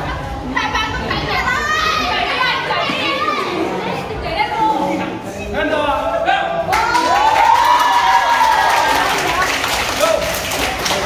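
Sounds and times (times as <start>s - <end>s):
young people talking and calling out: 0.0s - 10.4s.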